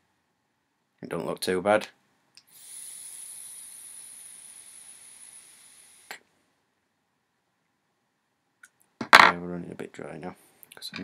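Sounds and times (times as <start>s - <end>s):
high hiss of vaporising coil: 2.4s - 6.3s.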